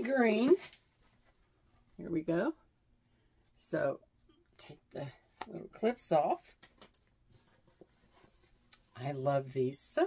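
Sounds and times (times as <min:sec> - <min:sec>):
soft fabric rustles: 0:07.2 - 0:10.0.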